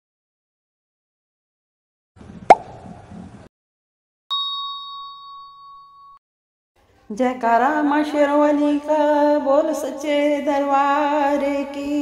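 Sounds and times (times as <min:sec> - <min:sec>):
bell-like ding: 0:04.3 - 0:06.2.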